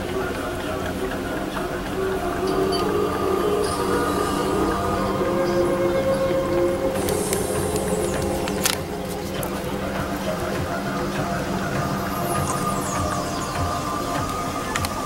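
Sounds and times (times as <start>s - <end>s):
hiss: 0.0s - 15.0s.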